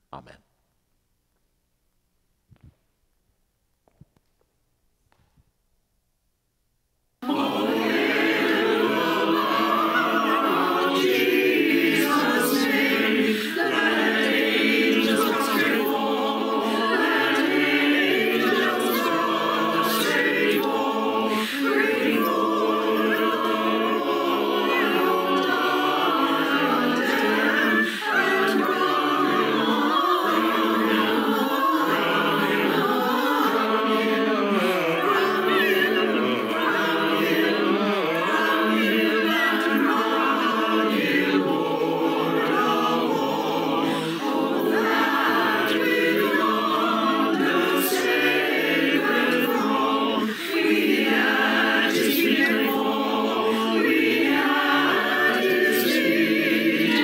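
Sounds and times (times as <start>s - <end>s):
mixed choir singing: 7.2s - 57.0s.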